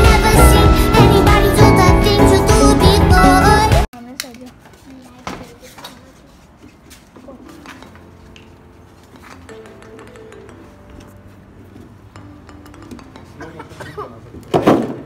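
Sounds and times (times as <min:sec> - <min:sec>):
faint music: 0:02.8 - 0:15.0.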